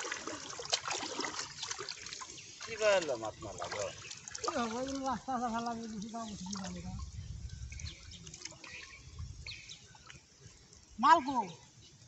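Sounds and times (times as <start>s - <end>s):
river water lapping and sloshing: 0.0s - 11.0s
bird chirps: 7.2s - 10.3s.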